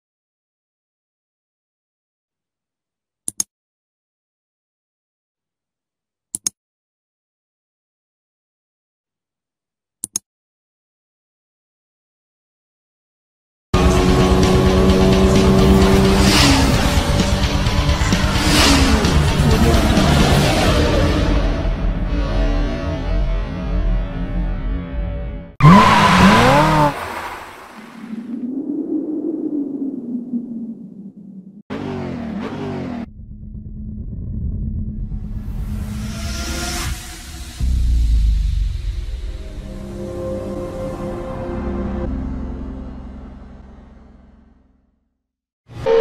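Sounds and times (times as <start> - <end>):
sports car engine effect: 13.8 - 24.4, 25.6 - 28.1, 31.7 - 38.2
music: 13.8 - 25.6, 34.2 - 45.9
engine-like rumble: 33.0 - 36.5.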